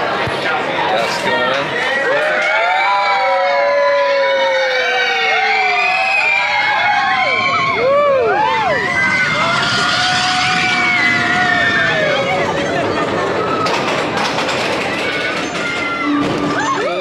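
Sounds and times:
riders screaming and whooping: 1.9s - 17.0s
roller coaster train rushing: 2.8s - 17.0s.

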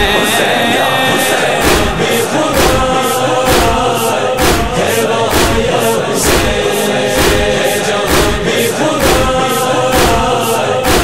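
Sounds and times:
chorus of voices chanting: 0.0s - 11.0s
steady beat of strikes: 0.0s - 11.0s.

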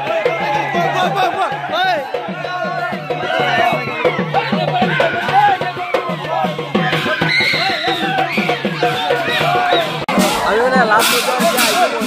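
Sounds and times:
crowd shouting: 0.0s - 12.0s
loud music playing: 8.8s - 12.0s.

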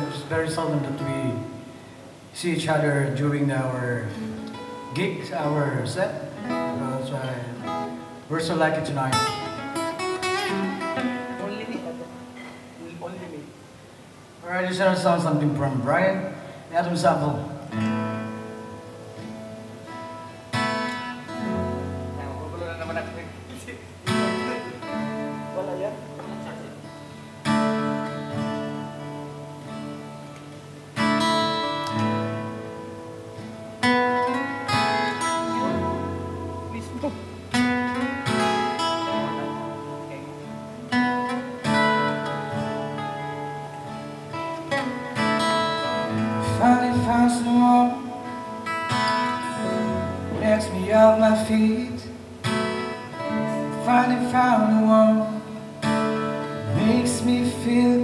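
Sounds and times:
acoustic guitar chords ringing: 0.0s - 13.0s, 13.8s - 58.0s.

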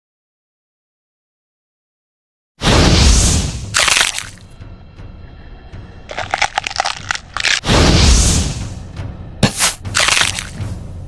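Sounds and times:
background music: 2.7s - 11.0s
sharp crackles: 3.8s - 4.4s, 6.1s - 7.7s, 9.6s - 10.6s.

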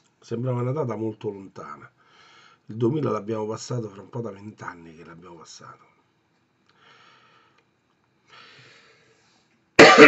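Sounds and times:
man talking: 0.2s - 2.0s, 2.7s - 6.0s
man coughing: 9.8s - 10.0s.

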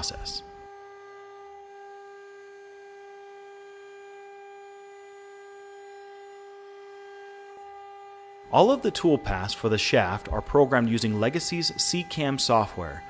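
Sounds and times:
router spindle humming: 0.0s - 13.0s.

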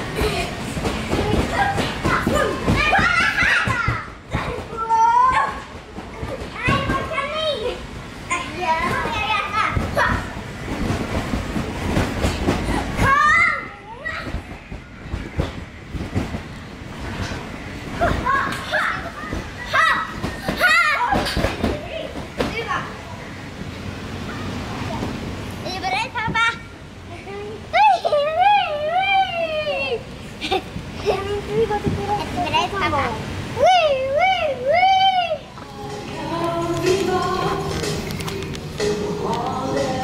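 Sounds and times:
children shouting and squealing: 1.4s - 5.7s.

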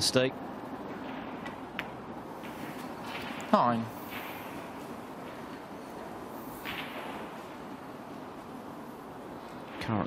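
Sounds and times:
quiet arena hush: 0.0s - 10.0s.

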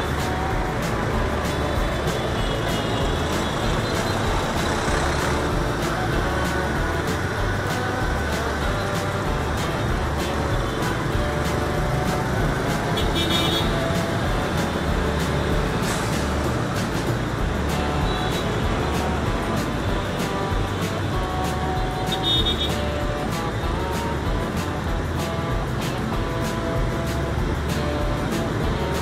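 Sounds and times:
bus running alongside: 0.0s - 29.0s
motorbike traffic: 0.0s - 29.0s.

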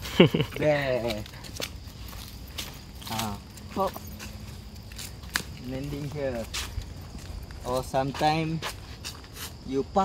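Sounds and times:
footsteps on dirt and leaves: 0.0s - 9.9s
sharp foot scuffs: 0.8s - 9.7s.

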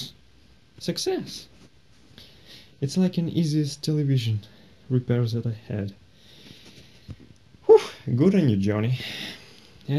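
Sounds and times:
faint steady hiss: 0.0s - 9.9s.

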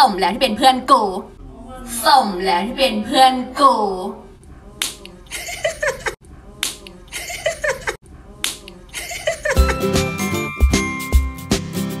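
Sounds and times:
finger snaps: 6.6s - 7.0s, 8.4s - 8.8s.

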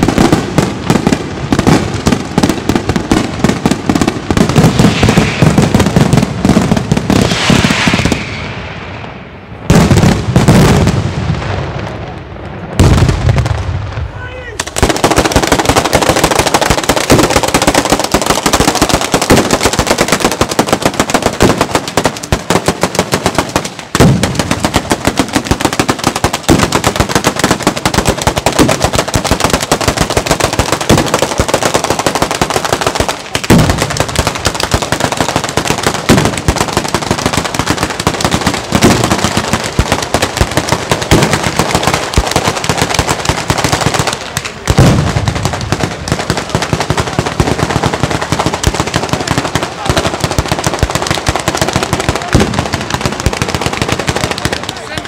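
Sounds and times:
firecrackers rattling: 0.0s - 11.1s, 11.8s - 55.0s
heavy firework blasts: 0.0s - 55.0s.

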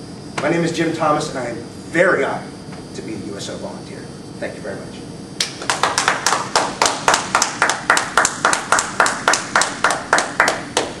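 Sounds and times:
small audience clapping: 5.4s - 11.0s.

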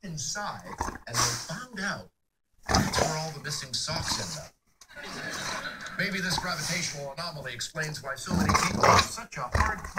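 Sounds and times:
man talking: 0.0s - 2.2s, 2.8s - 4.6s, 5.9s - 9.9s
dog growling: 2.7s - 3.4s, 8.3s - 9.9s.

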